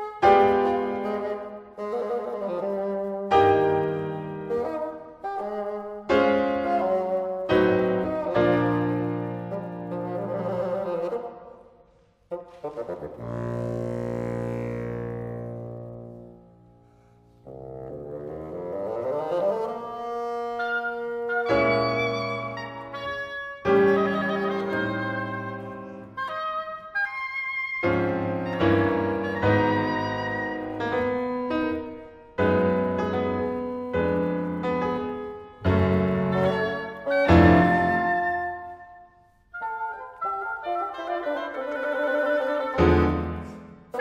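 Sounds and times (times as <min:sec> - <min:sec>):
bassoon: 0:00.0 - 0:11.7, 0:12.3 - 0:44.0
oboe: 0:00.0 - 0:44.0
piano chords: 0:03.3 - 0:11.5, 0:17.4 - 0:26.2, 0:27.8 - 0:38.8, 0:40.2 - 0:44.0.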